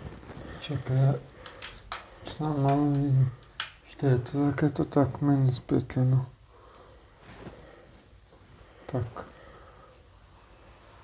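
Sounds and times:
wordless voice held on one pitch: 0:08.9 - 0:09.4.

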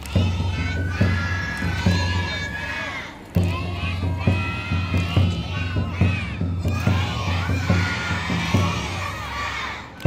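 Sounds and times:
high held flute: 0:00.0 - 0:03.8
children shouting: 0:00.0 - 0:10.0
taiko drum beats: 0:00.0 - 0:10.0.

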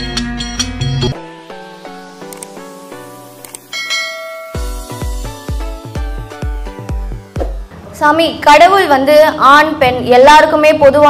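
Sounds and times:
background music with heavy beat: 0:00.0 - 0:07.7
bell chime: 0:03.7 - 0:05.3.

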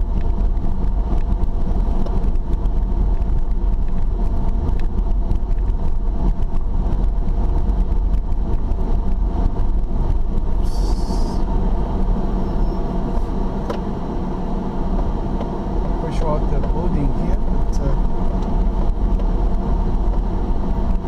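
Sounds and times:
car engine and tyre rumble: 0:00.0 - 0:21.0
brief high hiss: 0:10.6 - 0:11.4.

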